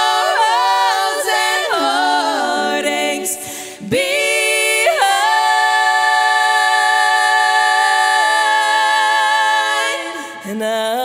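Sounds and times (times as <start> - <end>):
female vocal quartet singing: 0.0 - 11.0.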